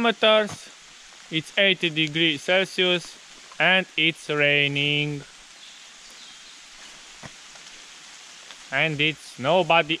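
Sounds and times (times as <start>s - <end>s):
steady rain hissing: 0.0s - 10.0s.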